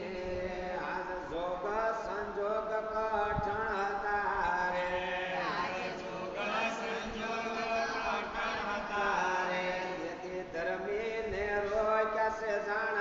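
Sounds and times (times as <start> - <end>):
voices chanting: 4.8 - 10.0.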